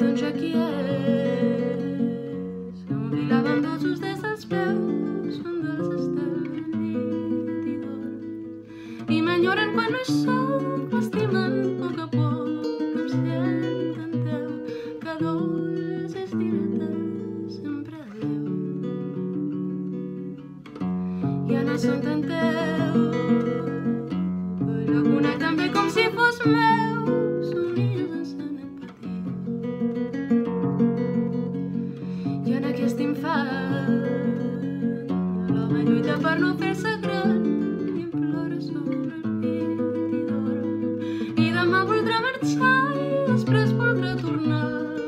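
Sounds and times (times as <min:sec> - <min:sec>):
woman singing: 0:00.0 - 0:18.9, 0:21.2 - 0:29.4, 0:31.2 - 0:45.0
plucked classical guitar: 0:00.0 - 0:45.0.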